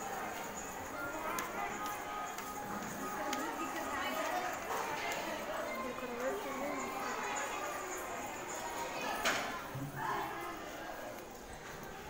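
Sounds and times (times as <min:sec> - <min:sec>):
girls' voices chattering: 0:00.0 - 0:12.0.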